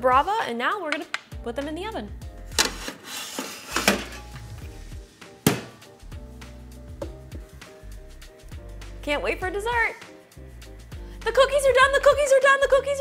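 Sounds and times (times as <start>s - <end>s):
background music: 0.0s - 13.0s
oven door shutting: 2.6s - 4.3s
metal tray sliding into oven: 2.6s - 4.4s.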